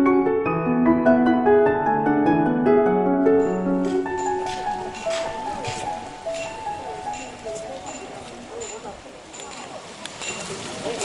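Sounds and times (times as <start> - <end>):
background music melody: 0.0 - 9.1.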